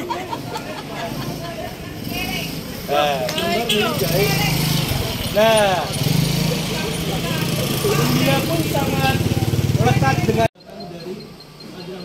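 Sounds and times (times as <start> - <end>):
motorcycle engine running at low revs: 4.0 - 10.5.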